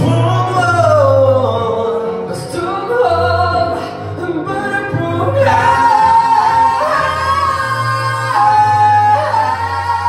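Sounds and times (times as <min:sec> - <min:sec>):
two men singing duet: 0:00.0 - 0:10.0.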